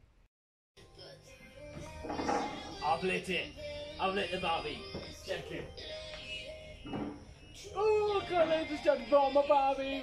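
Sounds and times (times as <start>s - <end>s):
background music: 0.8s - 10.0s
man speaking: 7.8s - 10.0s.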